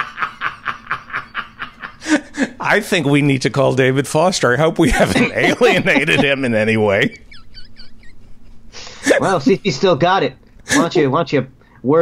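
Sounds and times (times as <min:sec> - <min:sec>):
man chuckling breathily: 0:01.3 - 0:02.6.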